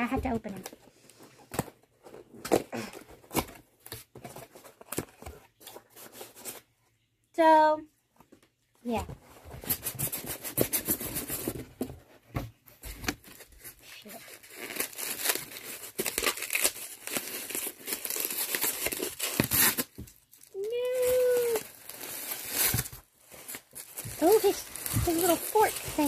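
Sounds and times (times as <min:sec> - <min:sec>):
packaging crinkling and tearing: 0:13.3 - 0:26.0.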